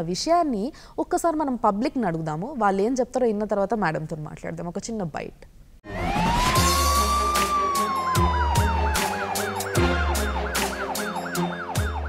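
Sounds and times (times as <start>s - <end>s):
electronic title music: 5.8s - 12.0s
siren-like sweeping tone: 5.8s - 12.0s
fast electronic warble: 5.9s - 11.7s
sharp percussive hits: 6.4s - 11.4s.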